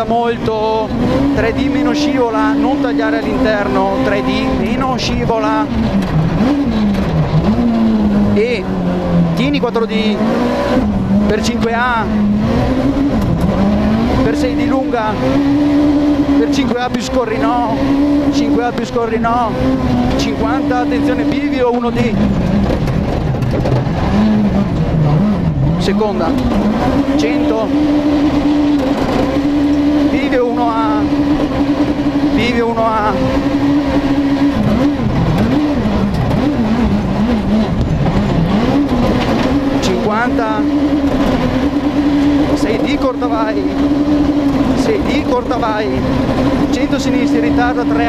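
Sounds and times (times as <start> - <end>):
car engine revving low: 0.0 - 48.0
road noise: 0.0 - 48.0.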